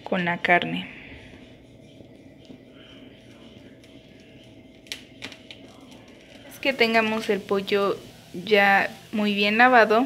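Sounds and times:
gas burner hissing: 0.0 - 10.0.

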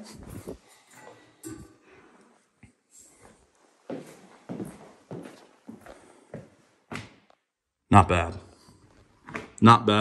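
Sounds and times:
hard-soled footsteps on tile: 2.6 - 7.5, 8.8 - 9.6.

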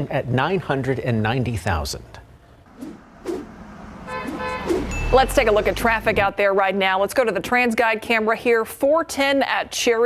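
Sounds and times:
steady horn-like tone: 2.7 - 6.4.

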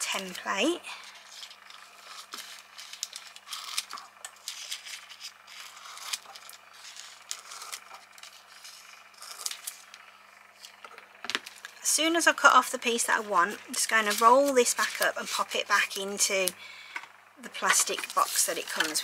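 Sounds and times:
foil crinkling: 1.1 - 10.0
scissors cutting metallic foil: 1.4 - 8.4, 13.7 - 16.5, 17.6 - 19.0.

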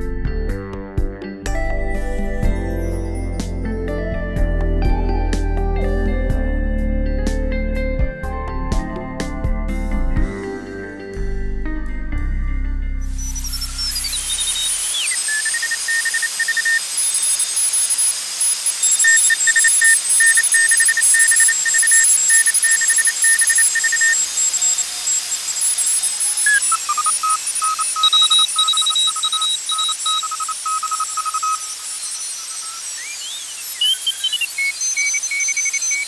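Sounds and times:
morse code beeps: 13.1 - 36.0
radio hiss: 13.2 - 36.0.

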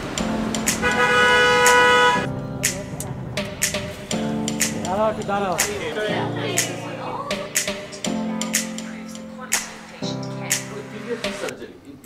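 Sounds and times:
vehicle horn blast: 0.8 - 2.3.

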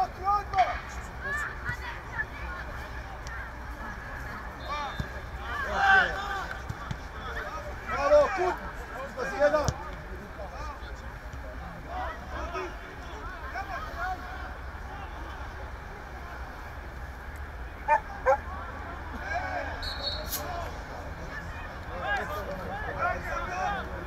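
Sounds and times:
footballers shouting: 0.0 - 24.0.

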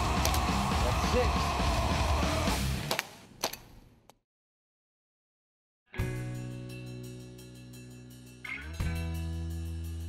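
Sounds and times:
music: 0.0 - 2.9, 5.9 - 10.0.

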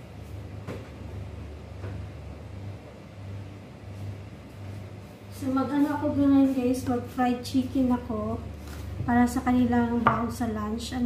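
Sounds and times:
refrigerator compressor hum: 0.0 - 11.0.

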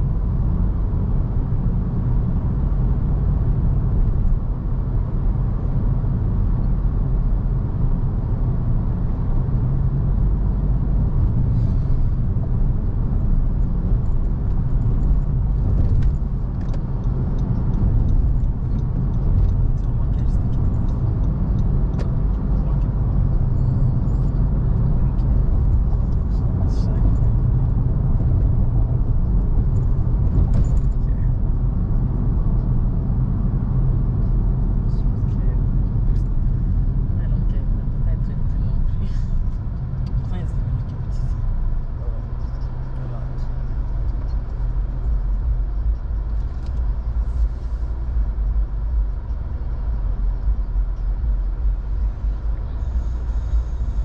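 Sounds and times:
car driving in traffic: 0.0 - 54.0.

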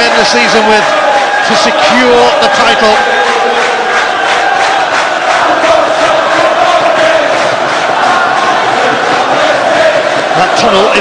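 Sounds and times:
men chanting in unison: 4.4 - 11.0.

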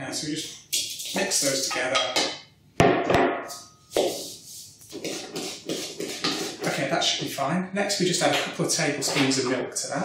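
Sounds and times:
spoon scraping plastic bowl: 4.0 - 6.9.

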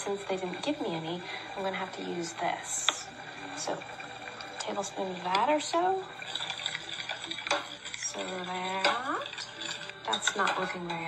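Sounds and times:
spoon stirring thick mash: 4.5 - 11.0
spoon clinking against pot: 6.2 - 11.0.

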